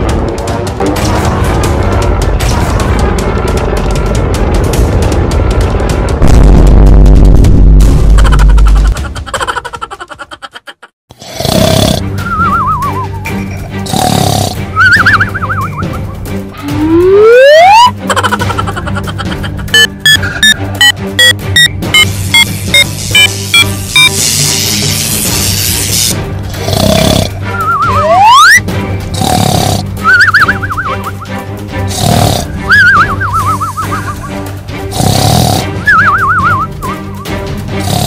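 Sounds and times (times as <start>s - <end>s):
cartoon music: 12.2s - 13.5s, 14.7s - 25.5s, 27.4s - 28.7s, 30.0s - 31.5s, 32.6s - 34.5s, 35.8s - 37.5s
slide whistle glide: 14.8s - 15.9s, 16.7s - 17.9s, 20.8s - 24.2s, 27.5s - 28.6s, 30.0s - 31.3s, 32.7s - 34.2s, 35.9s - 37.1s
wobbling whistles: 14.8s - 16.0s, 16.7s - 17.9s, 20.1s - 24.1s, 27.5s - 28.6s, 30.0s - 31.3s, 32.7s - 34.3s, 35.9s - 37.3s.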